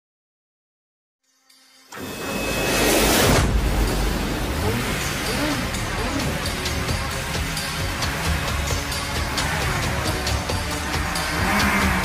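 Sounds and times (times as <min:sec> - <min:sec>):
loud rushing with deep rumble: 0:02.7 - 0:12.0.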